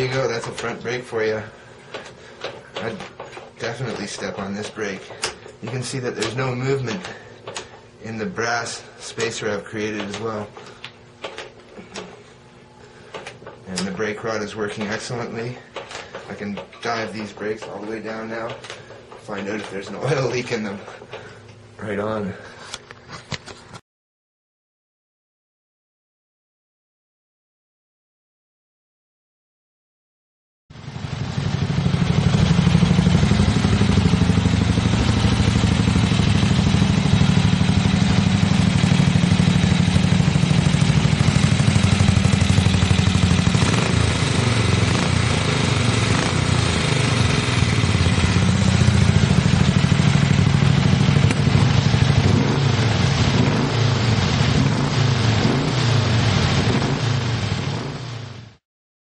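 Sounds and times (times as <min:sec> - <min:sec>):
motorcycle engine revving: 0:30.8 - 0:58.6.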